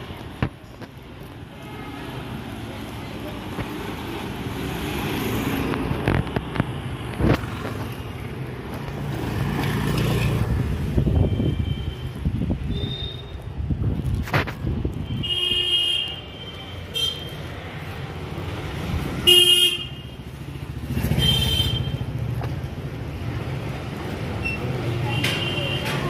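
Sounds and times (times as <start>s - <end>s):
street noise: 0.0s - 26.0s
motorbike passing close: 20.3s - 24.8s.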